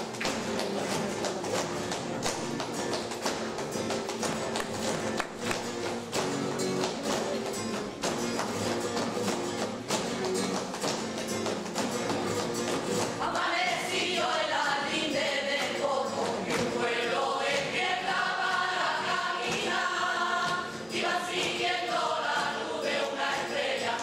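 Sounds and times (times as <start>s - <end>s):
percussion hits: 0.0s - 24.0s.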